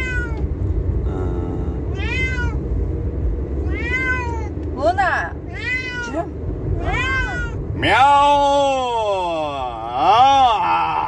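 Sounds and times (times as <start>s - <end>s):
cat meowing: 0.0s - 0.4s, 1.9s - 2.6s, 3.6s - 4.5s, 5.5s - 7.6s
low car cabin rumble: 0.0s - 11.0s.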